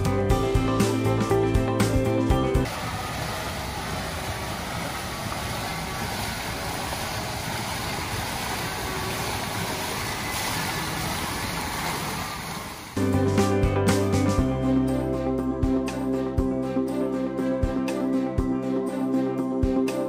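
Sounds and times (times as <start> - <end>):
background music: 0.0 - 2.7, 13.0 - 20.0
water splashing in fountain: 2.7 - 13.0.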